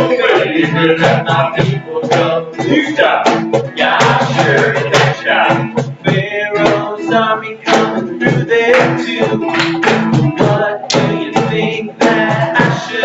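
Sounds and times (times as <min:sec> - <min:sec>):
cajon beat: 0:00.0 - 0:13.0
man singing: 0:00.0 - 0:13.0
strummed acoustic guitar: 0:00.0 - 0:13.0.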